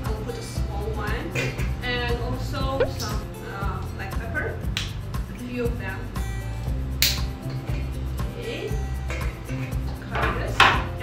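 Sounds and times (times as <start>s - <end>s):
background music with low notes: 0.0s - 11.0s.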